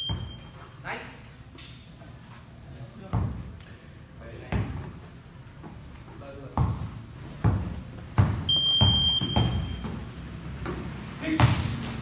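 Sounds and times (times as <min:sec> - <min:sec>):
basketball bouncing: 0:03.1 - 0:03.4, 0:06.6 - 0:11.9
high-pitched beep: 0:08.5 - 0:09.8.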